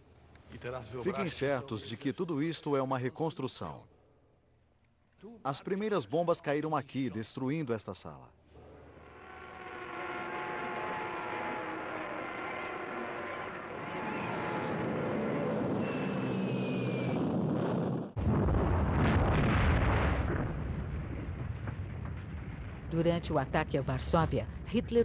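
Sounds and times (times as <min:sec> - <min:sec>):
falling bomb whistle: 0:08.9 - 0:17.5
propeller engines droning: 0:10.6 - 0:17.2
heavy explosion rumbling: 0:13.8 - 0:25.0.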